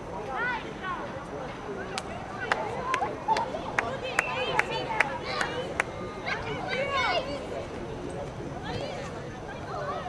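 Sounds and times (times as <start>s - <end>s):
voices calling across a field: 0.0s - 10.0s.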